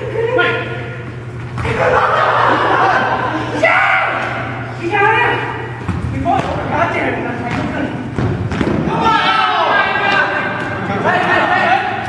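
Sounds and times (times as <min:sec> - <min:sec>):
players' voices: 0:00.0 - 0:12.0
soccer ball thudding on gym floor: 0:07.4 - 0:09.0.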